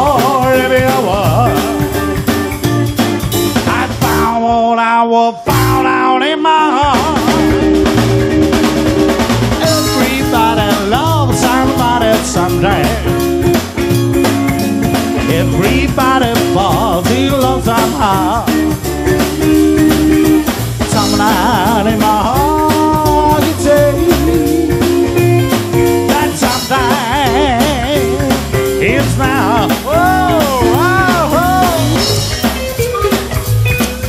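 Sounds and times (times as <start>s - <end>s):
blues-rock band playing: 0.0s - 4.8s, 5.4s - 34.0s
drums: 0.0s - 34.0s
electric guitars: 0.0s - 34.0s.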